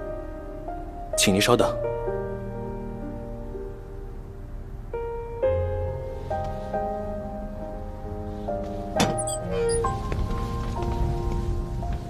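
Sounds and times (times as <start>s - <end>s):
music with long held notes: 0.0s - 12.0s.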